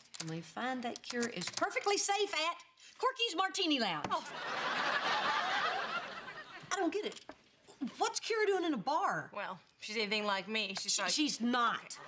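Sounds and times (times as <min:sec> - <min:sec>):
studio audience laughing: 0:04.2 - 0:06.7.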